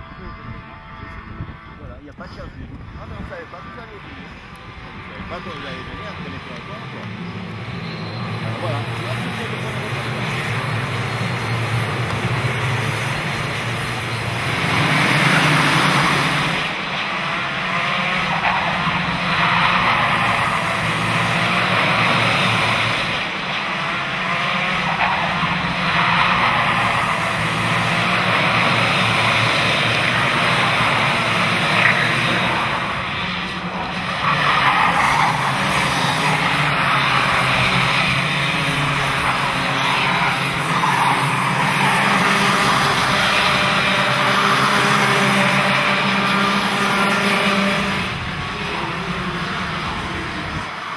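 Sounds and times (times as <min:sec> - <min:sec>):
racing kart engines buzzing: 0:00.0 - 0:50.9.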